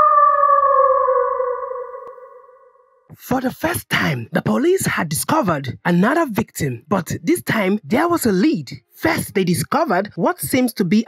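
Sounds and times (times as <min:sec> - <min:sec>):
wolf howl: 0:00.0 - 0:02.7.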